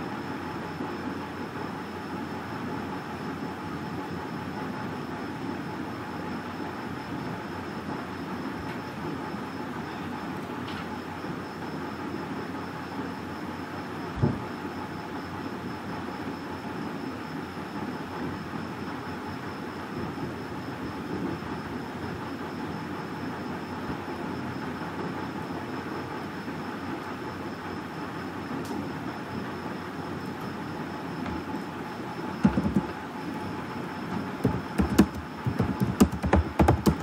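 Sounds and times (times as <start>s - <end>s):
steady rumbling noise: 34.1s - 37.0s.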